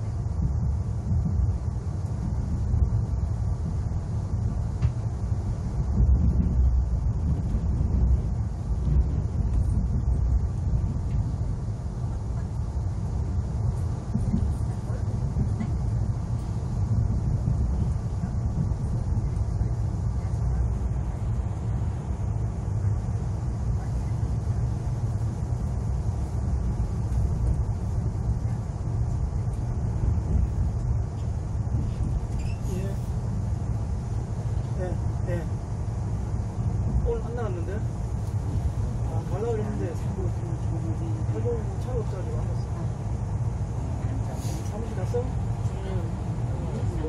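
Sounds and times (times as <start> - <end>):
train low rumble: 0.0 - 47.0.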